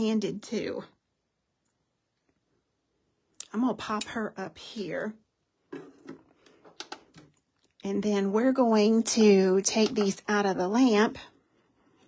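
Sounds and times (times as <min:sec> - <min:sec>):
woman speaking: 0:00.0 - 0:01.0, 0:03.4 - 0:05.2, 0:07.8 - 0:11.3.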